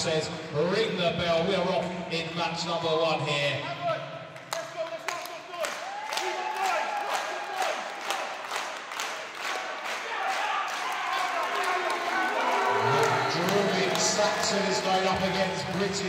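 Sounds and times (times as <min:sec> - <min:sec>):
audience clapping in rhythm: 0:04.3 - 0:16.0.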